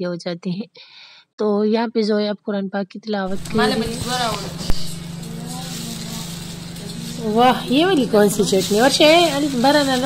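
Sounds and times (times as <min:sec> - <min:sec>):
plastic bag rustling: 0:03.3 - 0:10.0
steady low hum: 0:03.3 - 0:10.0.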